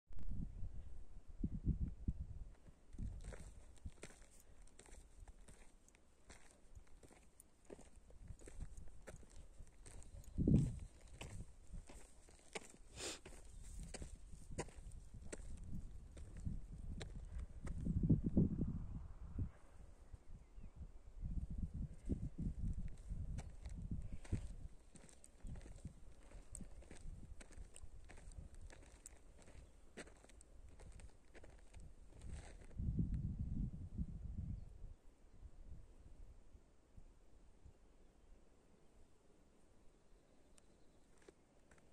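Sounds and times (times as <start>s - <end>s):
footsteps on dry clay: 3.0s - 17.9s, 22.8s - 32.8s.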